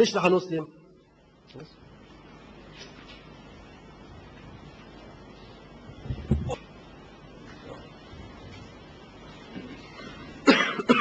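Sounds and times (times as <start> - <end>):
man coughing: 10.4 - 11.0.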